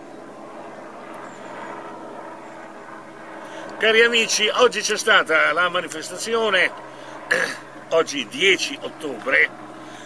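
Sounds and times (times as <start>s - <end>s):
low background hum: 0.0s - 10.0s
man speaking: 3.8s - 9.5s.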